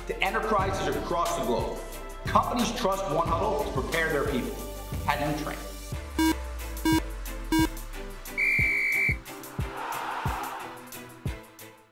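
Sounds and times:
music with steady beat: 5.7s - 9.7s
electronic countdown beeps: 6.2s - 7.8s, 8.4s - 9.2s
long high whistle tone: 8.4s - 9.2s
whooshing swell: 9.3s - 11.2s.

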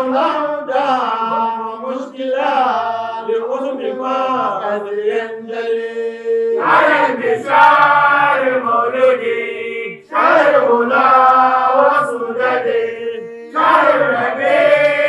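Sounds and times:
men chanting unaccompanied: 0.0s - 15.0s.

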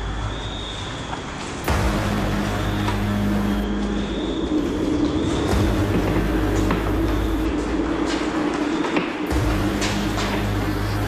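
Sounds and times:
sustained low drone: 1.6s - 11.0s
sharp percussive hits: 1.7s - 8.4s, 9.0s - 11.0s.

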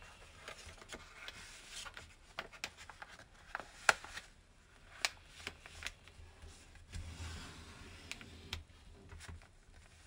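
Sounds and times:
paper being folded and creased: 0.0s - 10.0s.

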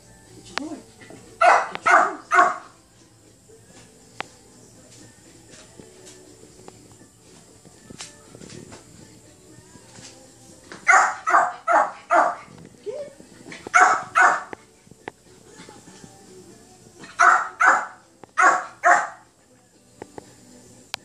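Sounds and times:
dog barking sharply: 1.4s - 2.7s, 10.9s - 12.4s, 13.7s - 14.5s, 17.2s - 19.2s.

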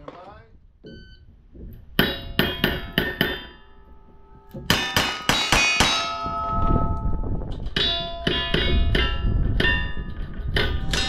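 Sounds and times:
steel targets ringing: 2.0s - 11.0s.

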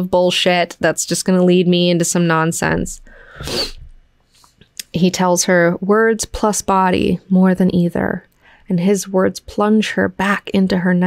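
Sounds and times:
woman breathing close to microphone: 3.0s - 4.6s.

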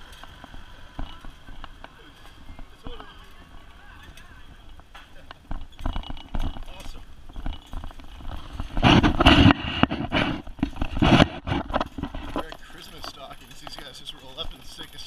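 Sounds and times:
rickshaw frame rattling: 0.0s - 15.0s.

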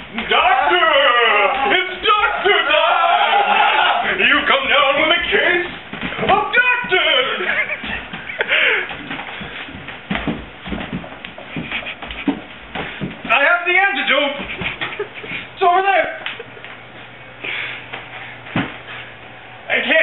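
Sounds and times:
people scuffling: 0.0s - 19.2s
loud wordless cries: 0.1s - 5.5s
bumps and knocks: 5.6s - 13.5s.

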